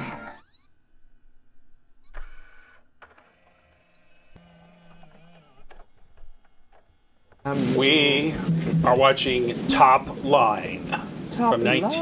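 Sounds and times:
mechanical whirring: 0:01.9 - 0:10.2.

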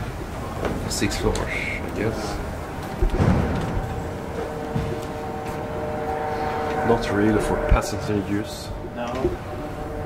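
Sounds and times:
elevator mechanical rumble: 0:00.0 - 0:10.0
multi-tone hum: 0:00.0 - 0:10.0.

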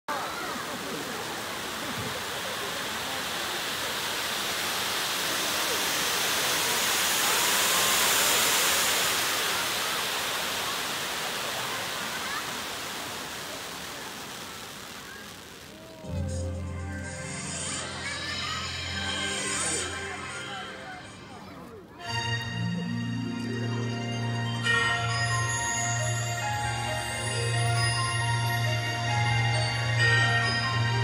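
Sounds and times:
spark fountains hissing: 0:00.1 - 0:21.3, 0:24.6 - 0:31.0.

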